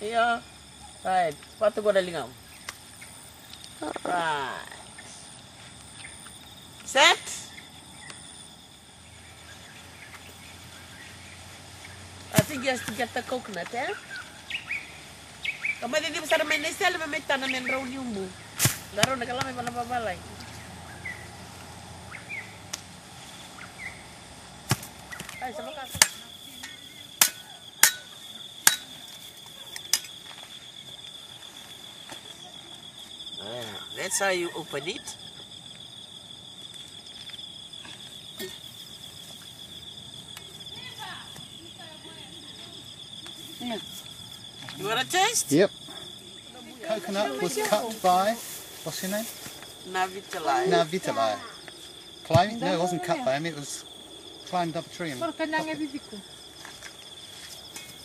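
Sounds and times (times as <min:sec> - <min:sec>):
insect chorus buzzing: 0:00.0 - 0:58.0
outdoor background noise: 0:00.0 - 0:58.0
bird chirps: 0:13.9 - 0:15.9
machete knocking on coconut: 0:24.7 - 0:28.9.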